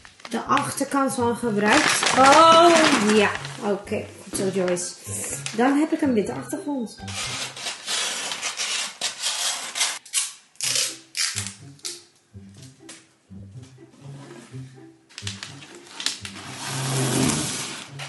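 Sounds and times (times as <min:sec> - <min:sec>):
wrapping paper crinkling: 0:00.0 - 0:01.0, 0:01.6 - 0:03.8, 0:07.1 - 0:10.2
scissors cutting paper: 0:07.0 - 0:11.6
background music with bass line: 0:10.7 - 0:18.0.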